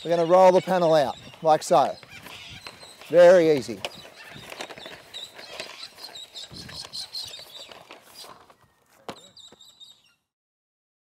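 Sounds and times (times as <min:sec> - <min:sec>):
plastic rail rolled over grass: 0:00.0 - 0:09.3
birds chirping: 0:00.0 - 0:10.3.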